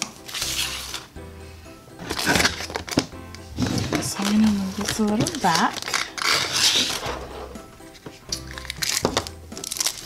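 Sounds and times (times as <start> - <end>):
paper crinkling and rustling: 0.0 - 1.1, 2.0 - 10.0
background music: 0.0 - 10.0.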